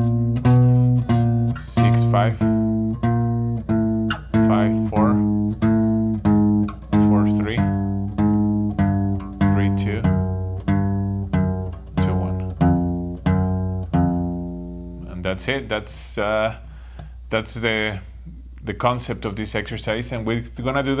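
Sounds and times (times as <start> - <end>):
acoustic guitar single picked notes: 0.0 - 15.4.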